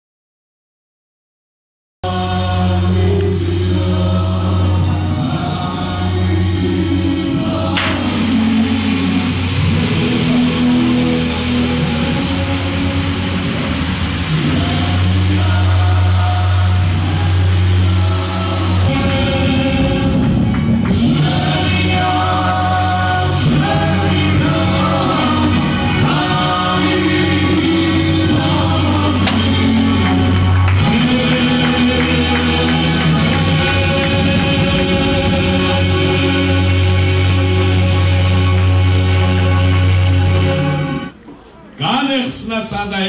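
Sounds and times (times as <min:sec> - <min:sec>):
choir singing: 0:02.0 - 0:41.1
sustained low note: 0:06.3 - 0:41.1.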